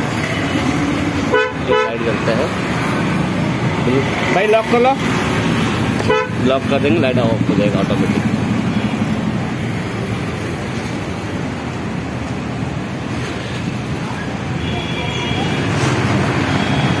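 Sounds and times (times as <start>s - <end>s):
street traffic: 0.0s - 17.0s.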